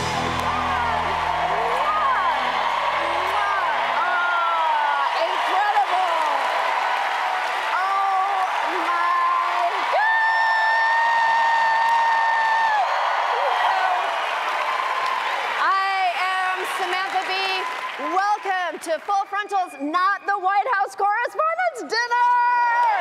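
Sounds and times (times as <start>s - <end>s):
long held shout: 0.0s - 6.4s, 7.7s - 14.2s
audience applauding: 0.0s - 19.8s
crowd cheering and whooping: 0.0s - 19.8s
woman speaking: 7.8s - 9.8s, 15.6s - 22.8s.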